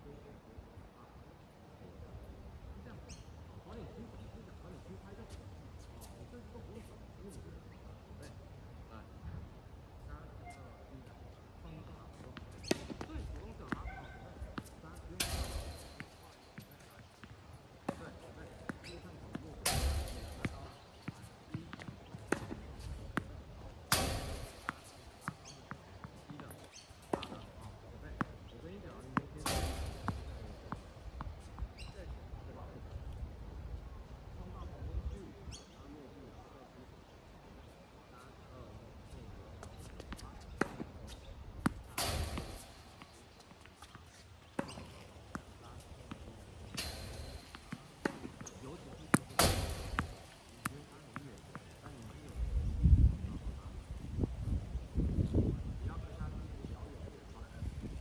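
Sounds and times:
tennis balls struck and bouncing: 11.8s - 32.2s, 39.6s - 52.4s.

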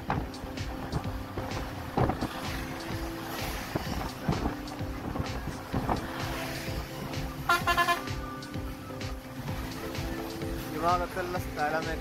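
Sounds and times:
background music: 0.0s - 12.0s
vehicle road noise: 0.0s - 12.0s
vehicle horn beeping: 7.4s - 8.3s.

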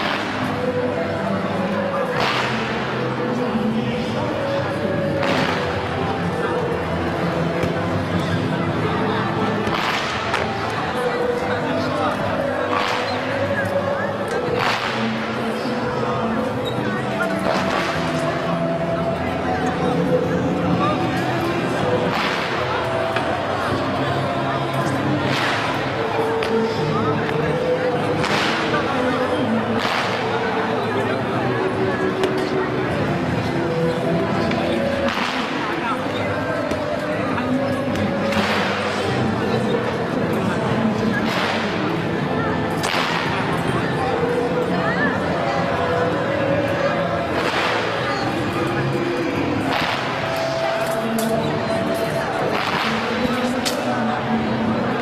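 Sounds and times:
background music: 0.0s - 55.0s
crowd chatter: 0.0s - 55.0s.

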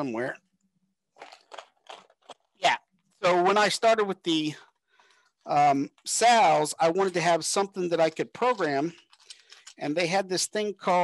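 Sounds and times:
crinkles: 1.1s - 3.3s, 8.0s - 9.9s.

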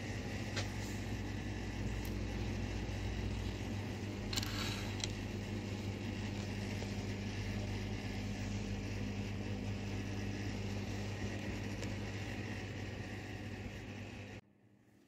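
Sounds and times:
machine hum: 0.0s - 14.9s.

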